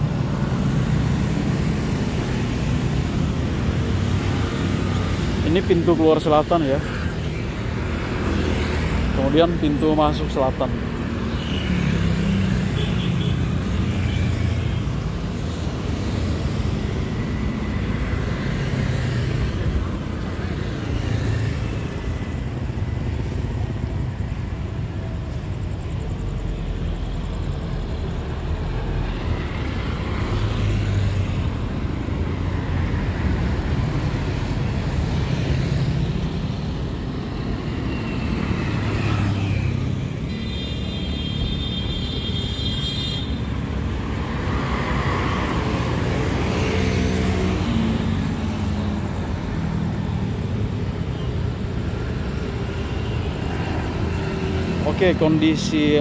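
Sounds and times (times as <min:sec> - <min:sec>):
cars passing: 0:00.0 - 0:56.0
low traffic rumble: 0:00.0 - 0:56.0
motorcycles passing: 0:00.0 - 0:56.0.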